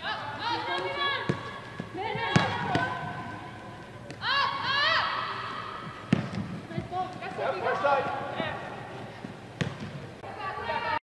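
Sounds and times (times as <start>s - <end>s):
soccer ball kicks on turf: 6.0s - 7.4s, 9.6s - 10.0s.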